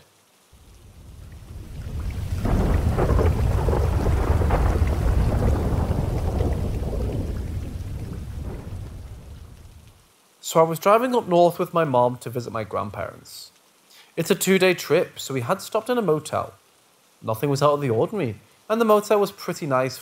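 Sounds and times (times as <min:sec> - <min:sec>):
rain: 0:00.0 - 0:20.0
thunder rolling: 0:00.6 - 0:10.0.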